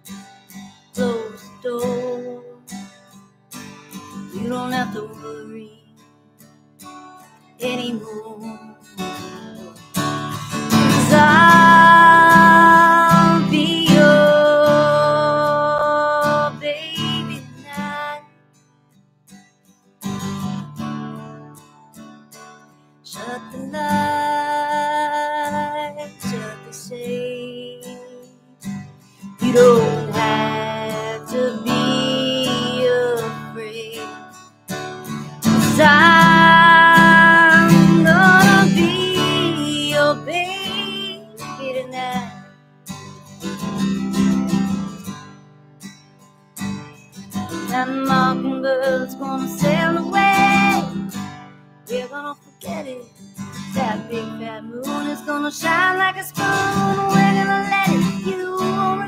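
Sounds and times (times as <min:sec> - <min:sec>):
acoustic guitar strumming: 0:00.0 - 0:59.0
woman singing long notes: 0:11.0 - 0:18.2, 0:29.4 - 0:34.0, 0:35.7 - 0:42.3, 0:47.7 - 0:51.0.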